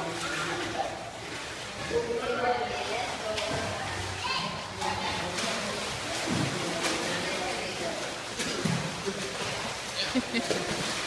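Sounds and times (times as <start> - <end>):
water splashing: 0.0 - 11.0
children shouting and playing: 4.0 - 6.3, 9.8 - 10.6.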